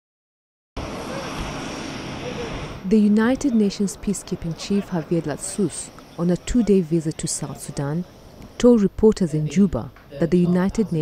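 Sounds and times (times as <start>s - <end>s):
jet engine rushing hiss: 0.8s - 8.6s.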